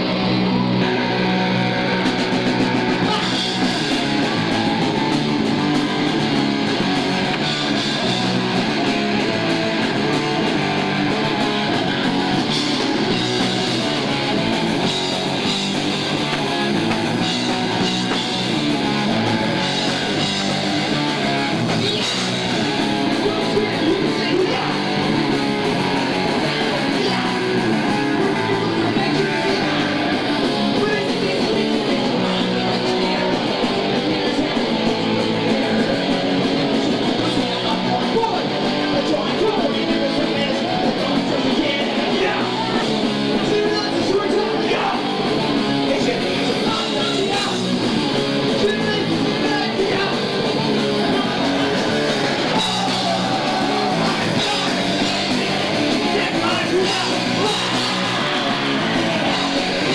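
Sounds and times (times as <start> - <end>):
electric guitar: 0.0 - 59.9
punk rock band playing live: 0.0 - 59.9.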